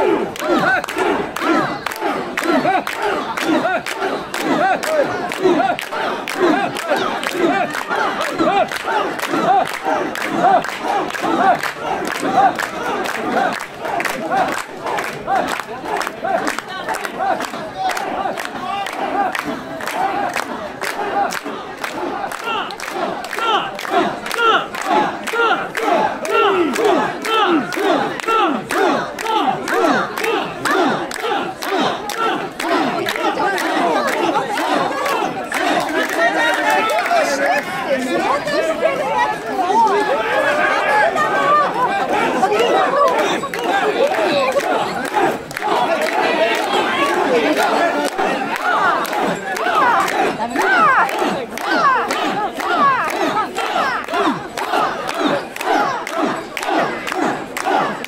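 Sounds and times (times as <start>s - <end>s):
crowd chanting in unison: 0.0s - 58.0s.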